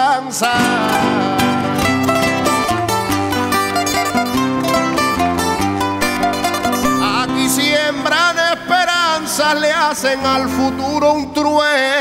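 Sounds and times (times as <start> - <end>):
guitar accompaniment: 0.0 - 12.0
plucked string melody: 0.6 - 10.8.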